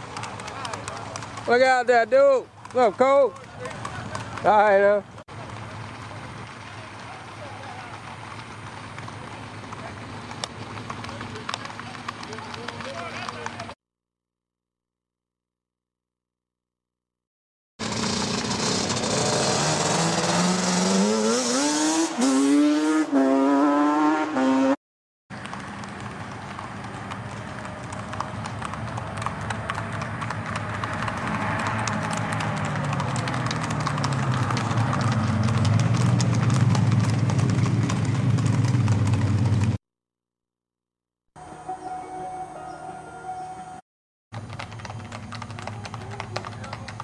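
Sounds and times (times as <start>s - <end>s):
horses hooves clip-clopping on road: 0.0s - 13.8s, 25.3s - 39.8s, 44.3s - 47.0s
vehicle engine speeding up: 17.8s - 24.8s, 25.4s - 39.8s.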